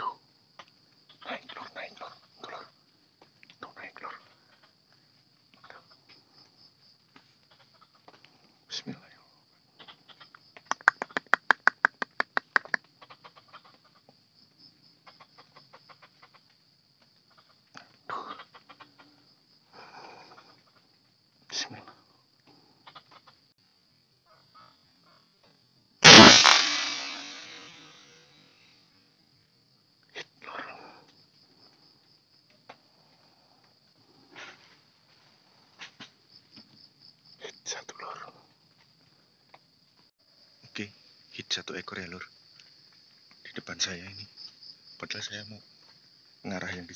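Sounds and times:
air rifle shot: 26.0s - 28.0s
steady high-pitched whine: 26.0s - 28.4s.

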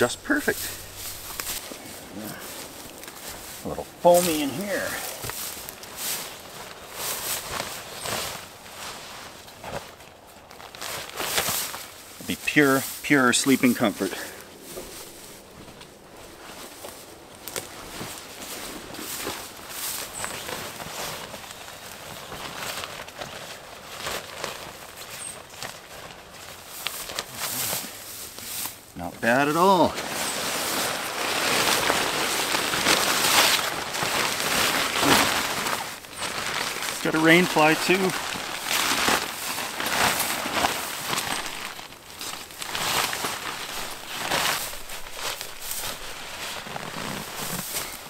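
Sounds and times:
tent fabric rustling: 0.0s - 48.0s.

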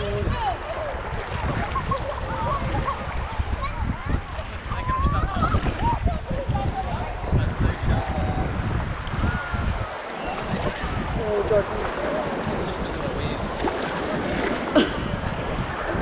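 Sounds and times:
water splashing against kayak hull: 0.0s - 16.0s
wind buffeting microphone: 0.0s - 16.0s.

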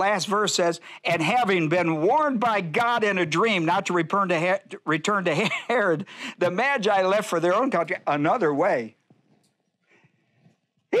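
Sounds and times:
man speaking: 0.0s - 9.0s.

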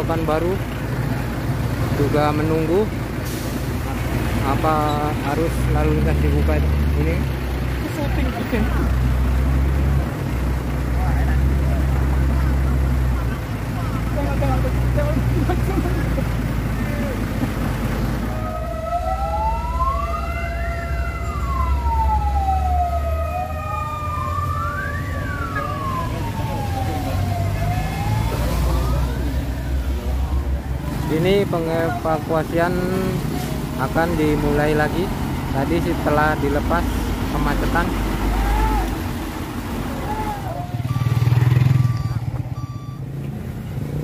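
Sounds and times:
low engine rumble: 0.0s - 41.0s
wailing siren: 18.2s - 31.6s, 39.9s - 42.9s.

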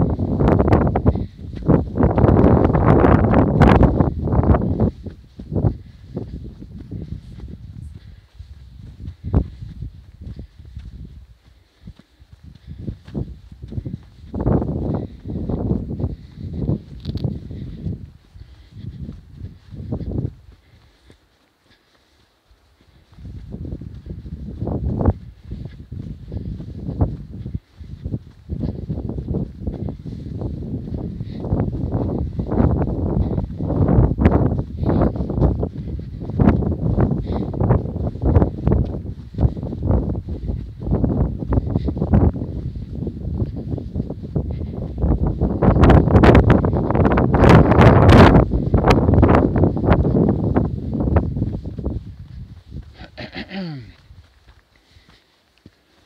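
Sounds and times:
wind buffeting microphone: 0.0s - 21.3s, 22.7s - 55.2s.

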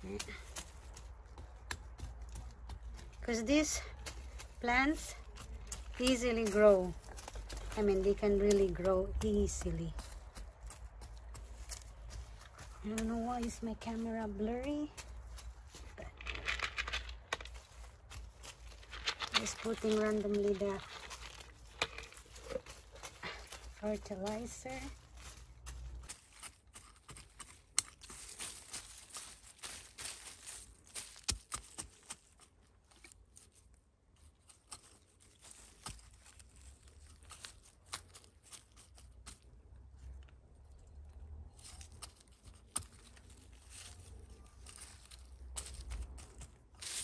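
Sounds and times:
fingers rustling in leaves: 0.0s - 47.0s
hand cultivator scraping soil: 1.6s - 28.6s.

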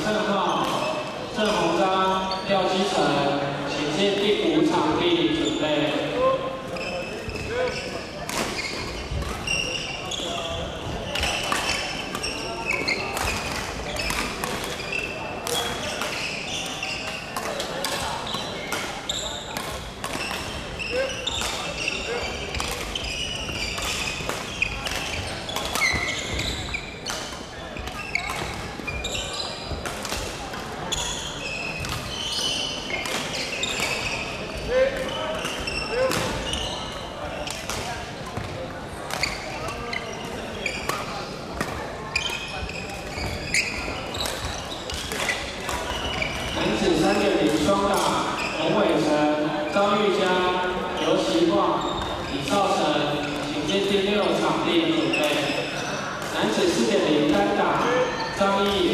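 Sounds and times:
murmur of voices: 0.0s - 58.9s
shoes squeaking on wooden floor: 6.7s - 17.4s, 18.0s - 29.8s, 30.8s - 37.6s, 39.2s - 41.3s, 42.0s - 58.9s
rackets striking shuttlecocks: 11.1s - 20.7s, 21.3s - 28.9s, 43.0s - 49.0s.

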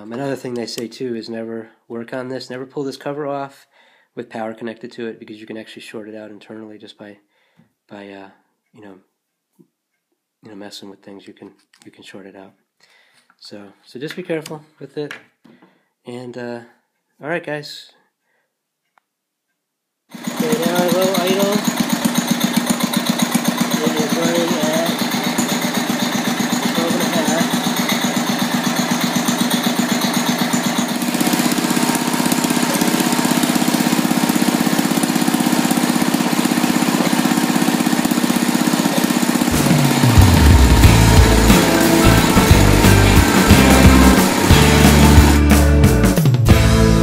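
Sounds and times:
tractor engine running: 20.2s - 47.0s
music with heavy bass: 39.5s - 47.0s.

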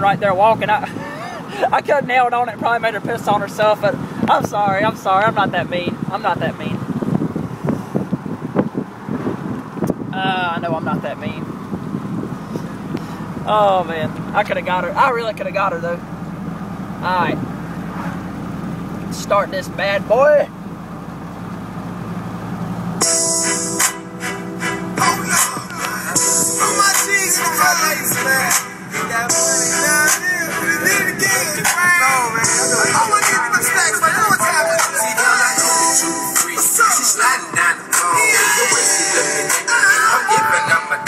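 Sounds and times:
road and wind noise in cab: 0.0s - 41.0s
hip-hop song with rapping: 24.9s - 41.0s.

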